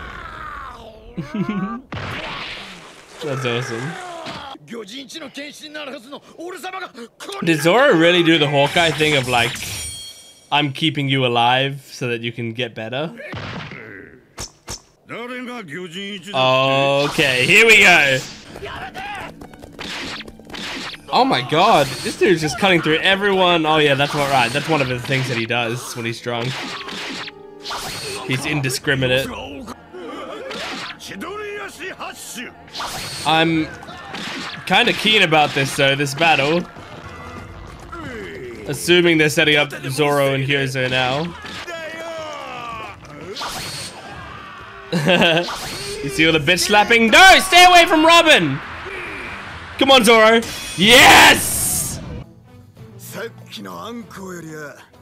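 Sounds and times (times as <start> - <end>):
music: 16.2 - 55.0
person shouting: 45.9 - 48.4, 50.8 - 52.0.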